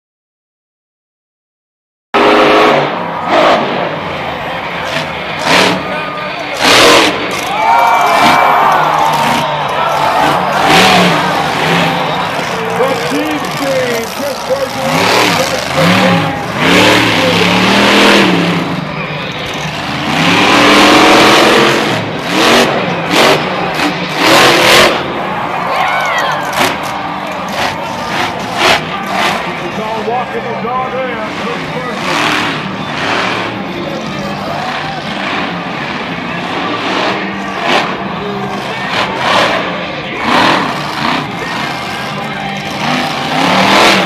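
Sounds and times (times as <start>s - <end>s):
truck engine revving hard: 2.2s - 44.0s.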